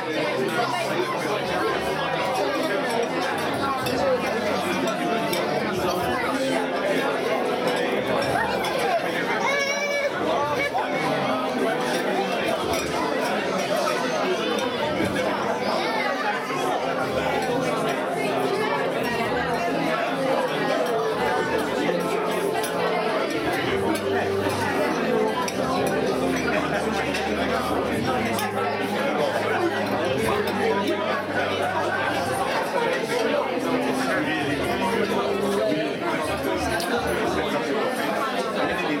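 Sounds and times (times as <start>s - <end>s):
crowd talking: 0.0s - 39.0s.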